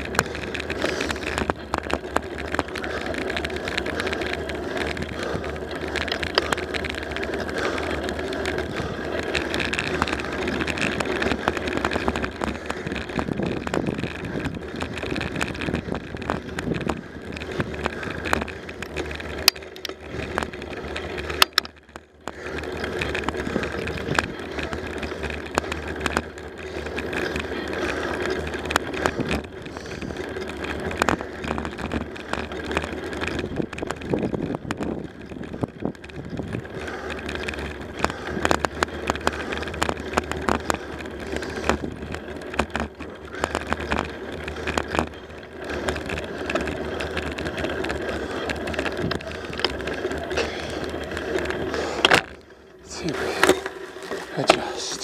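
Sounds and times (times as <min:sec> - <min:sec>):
bicycle rattles and clicks: 0:00.0 - 0:55.0
bicycle tyres on asphalt: 0:00.0 - 0:55.0.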